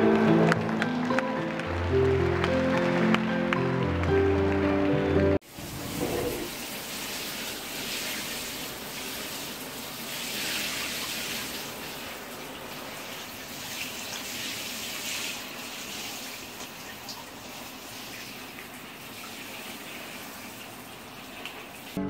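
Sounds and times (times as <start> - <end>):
shower spray splashing: 5.4 - 22.0.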